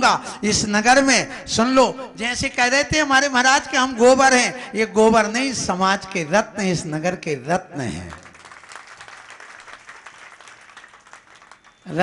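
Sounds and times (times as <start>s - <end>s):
audience applauding: 8.2s - 12.0s.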